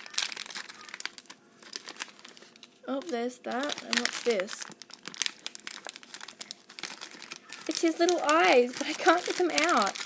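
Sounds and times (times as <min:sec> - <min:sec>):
plastic packet crinkling: 0:00.0 - 0:10.0.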